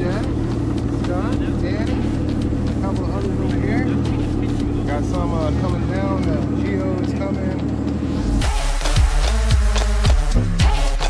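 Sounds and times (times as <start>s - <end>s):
indistinct voices: 0.0s - 9.4s
personal watercraft engines running: 0.0s - 10.6s.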